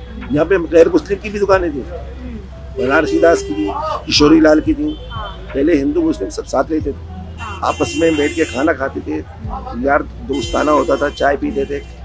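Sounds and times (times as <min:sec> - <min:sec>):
man talking: 0:00.3 - 0:11.9.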